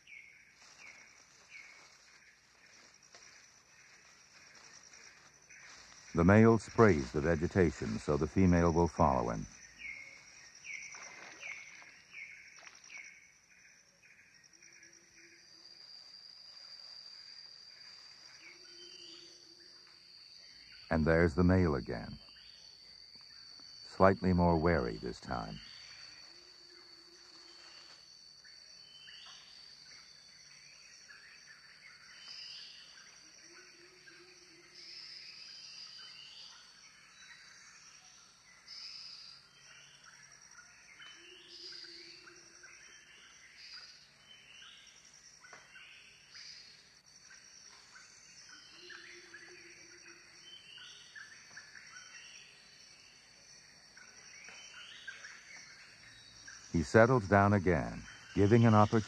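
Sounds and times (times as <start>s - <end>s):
high insect drone: 0.0s - 59.0s.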